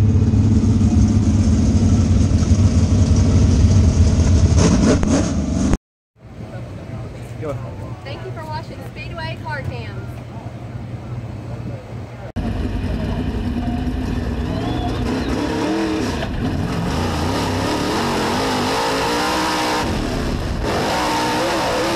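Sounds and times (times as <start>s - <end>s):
low hum: 0.0s - 8.7s
race car engine running hard: 12.2s - 21.9s.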